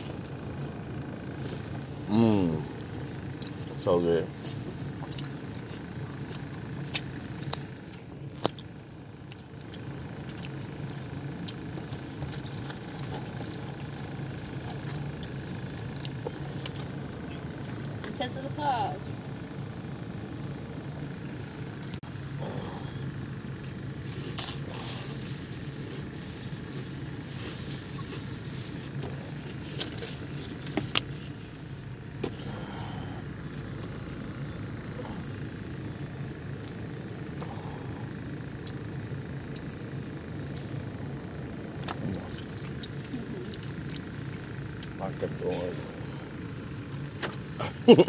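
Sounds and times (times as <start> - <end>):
car engine idling hum: 0.0 - 48.0.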